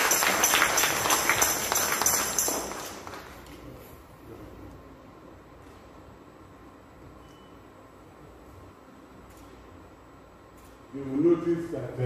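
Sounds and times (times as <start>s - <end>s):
congregation clapping: 0.0s - 3.5s.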